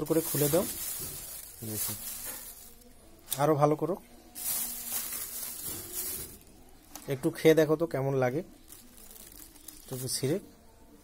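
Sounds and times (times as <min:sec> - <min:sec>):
plastic bag crinkling: 0:00.0 - 0:03.5, 0:04.4 - 0:07.2, 0:08.5 - 0:10.4.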